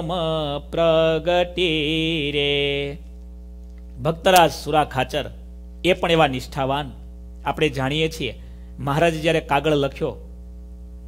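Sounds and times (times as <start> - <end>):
man chanting: 0.0 - 3.0, 4.0 - 10.2.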